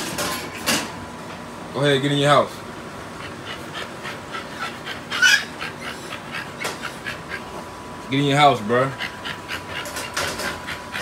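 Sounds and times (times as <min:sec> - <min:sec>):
dog panting rapidly: 0:03.1 - 0:07.7, 0:08.8 - 0:11.0.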